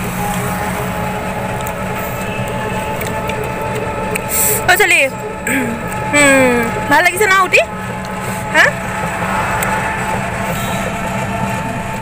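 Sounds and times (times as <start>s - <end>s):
engine hum inside vehicle: 0.0s - 12.0s
rattle: 0.0s - 12.0s
road noise: 0.0s - 12.0s.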